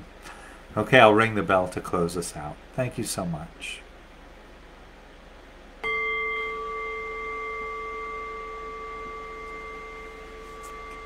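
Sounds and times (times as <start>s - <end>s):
meditation bell ringing: 5.8s - 11.0s.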